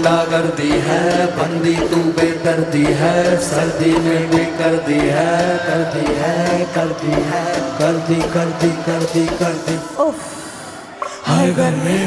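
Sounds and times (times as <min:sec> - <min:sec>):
regular beat: 0:00.0 - 0:10.0
chant-like melody: 0:00.0 - 0:12.0.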